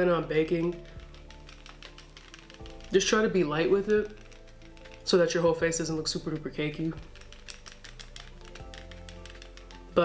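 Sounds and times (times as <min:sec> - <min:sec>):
faint background music: 0:00.0 - 0:10.0
powder brush tapping on skin: 0:00.2 - 0:10.0.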